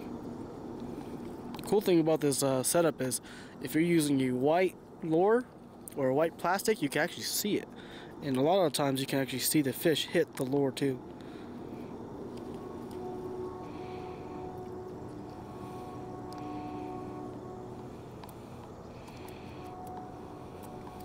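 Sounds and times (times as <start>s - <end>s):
low mechanical hum: 0.0s - 21.0s
faint pitched tones: 10.8s - 21.0s.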